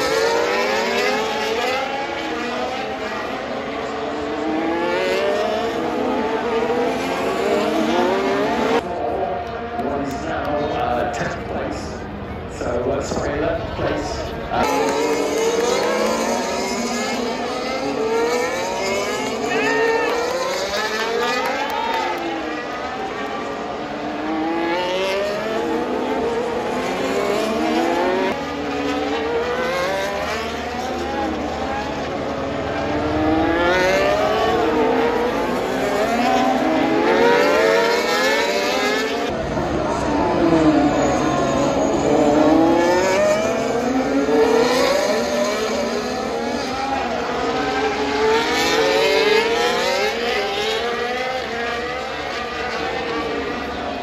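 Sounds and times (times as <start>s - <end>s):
racing car engines passing: 0.0s - 54.0s.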